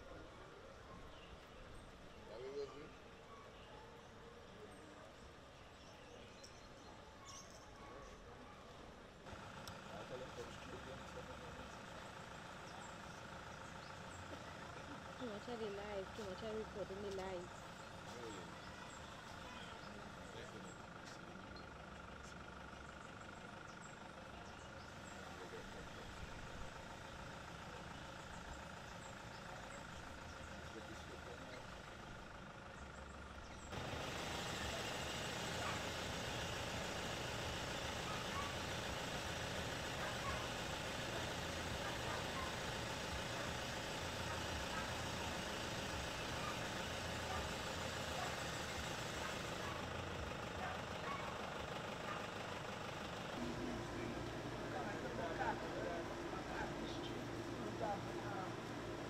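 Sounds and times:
engine running: 0.0s - 59.0s
outdoor background noise: 0.0s - 59.0s.

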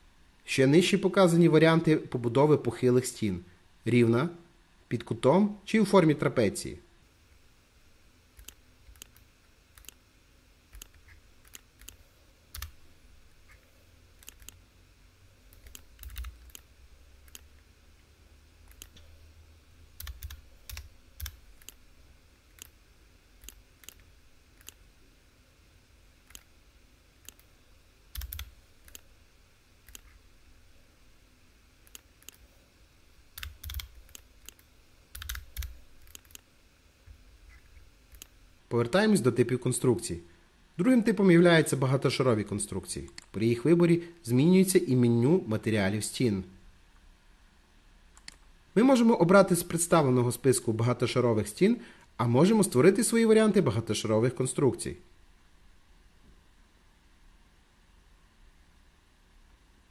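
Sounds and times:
faint computer mouse clicks: 8.4s - 9.2s, 9.8s - 10.0s, 10.7s - 12.8s, 14.2s - 14.6s, 20.0s - 21.8s, 23.4s - 24.8s, 29.9s - 30.2s, 33.4s - 36.4s, 38.1s - 38.4s, 48.2s - 48.4s
keyboard keystrokes: 10.7s - 12.8s, 15.5s - 16.6s, 20.0s - 21.8s, 28.2s - 29.0s, 33.4s - 36.4s.

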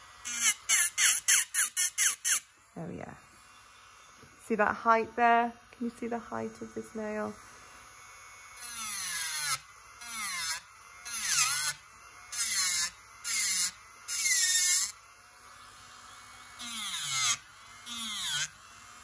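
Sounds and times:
electric nail drill grinding: 0.0s - 19.0s.

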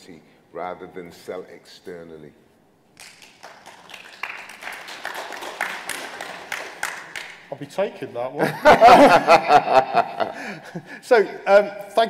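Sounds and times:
audience applauding: 3.0s - 7.5s.

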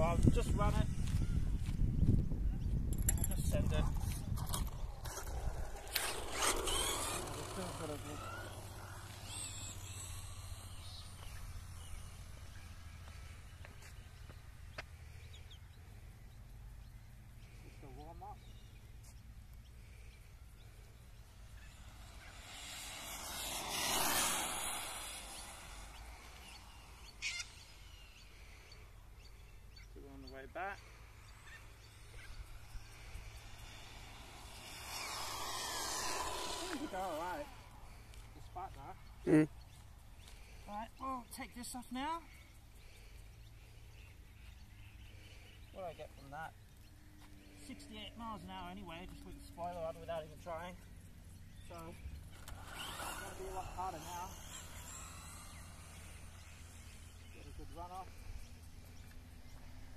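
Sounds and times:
electric rc buggy motor: 3.9s - 15.7s, 19.6s - 29.9s, 30.8s - 45.7s, 46.6s - 59.9s.

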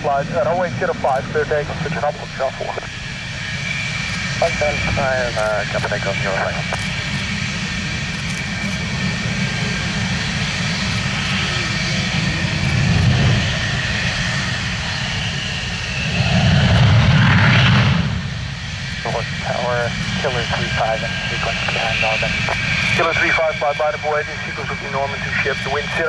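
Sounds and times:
jet engines rumbling and whining: 0.0s - 26.0s.

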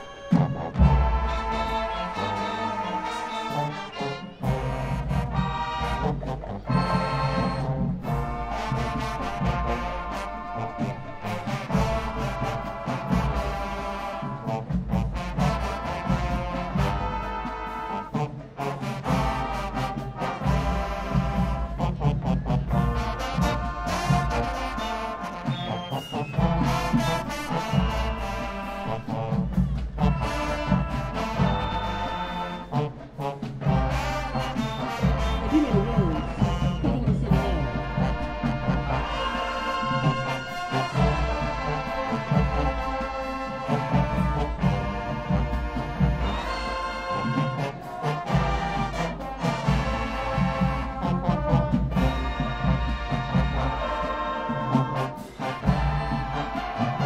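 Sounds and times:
brass chords: 0.0s - 57.0s.

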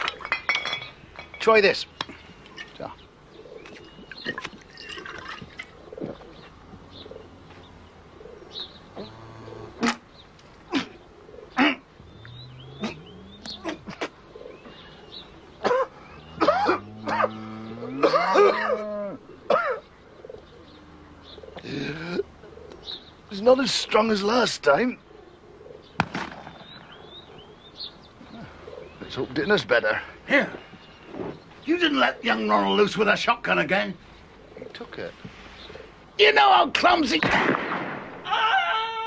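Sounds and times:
sharp knocks and clinks: 0.0s - 2.8s
birds chirping: 0.0s - 39.0s
long rising pitched calls: 11.5s - 13.7s.

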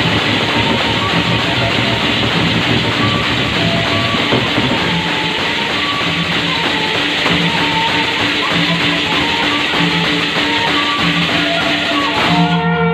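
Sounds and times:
drums: 0.0s - 12.9s
hand cymbals clashing: 0.0s - 12.9s
short melodic notes: 0.0s - 12.9s.

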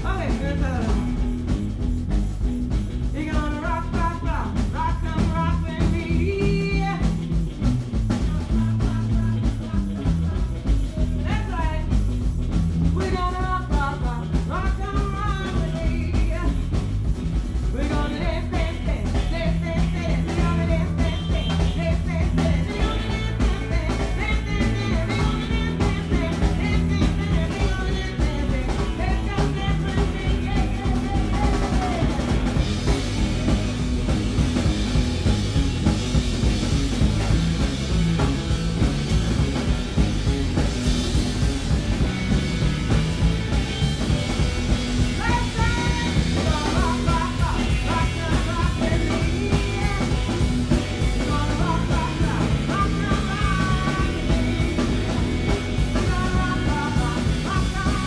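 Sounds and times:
woman singing: 0.0s - 1.3s, 3.1s - 7.4s, 8.0s - 35.0s, 41.7s - 58.0s
drum kit beat: 0.0s - 58.0s
electric guitar: 0.0s - 58.0s
live rock band playing: 0.0s - 58.0s.

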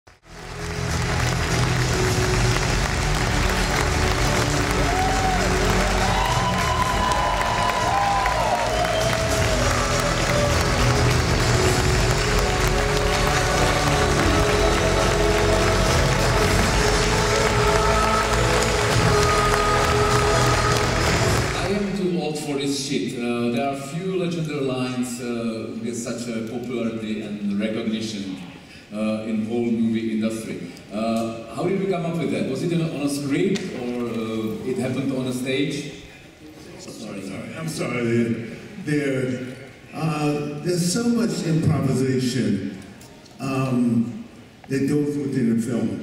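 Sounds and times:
audience applause: 0.1s - 22.0s.

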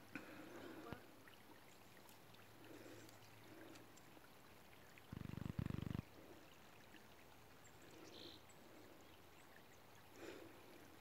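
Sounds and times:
creek water trickling: 0.0s - 11.0s.

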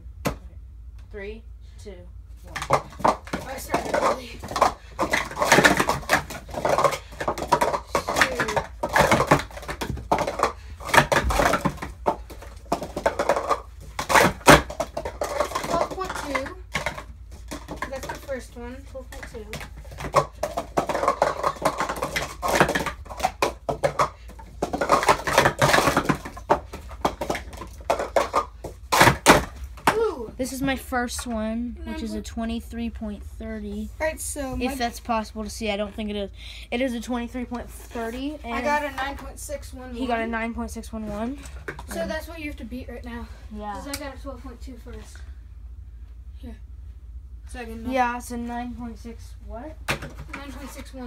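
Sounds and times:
plastic cups clacking: 2.4s - 30.0s, 37.8s - 40.2s, 41.0s - 42.2s, 49.8s - 51.0s.

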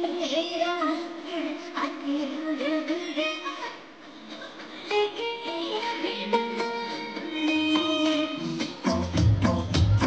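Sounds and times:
high voice singing: 0.0s - 10.0s
musical accompaniment: 4.2s - 10.0s.

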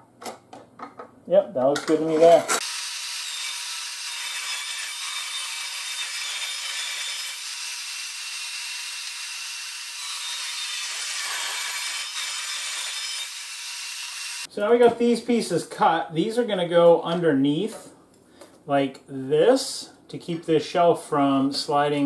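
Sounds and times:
table saw cutting metal: 2.6s - 14.5s.

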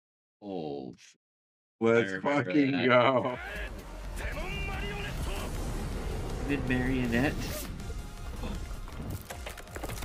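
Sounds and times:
dramatic background music: 3.4s - 10.0s
low rumbling sound effect: 4.7s - 9.0s.

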